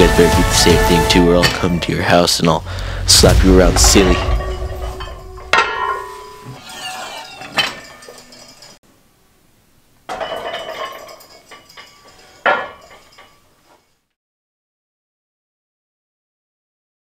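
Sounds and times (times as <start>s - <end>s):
metal weight plates clanking: 3.1s - 8.8s, 10.1s - 14.0s.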